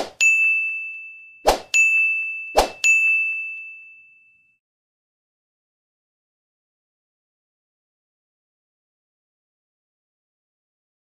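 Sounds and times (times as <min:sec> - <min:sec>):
bright bell-like ding: 0:00.2 - 0:04.6.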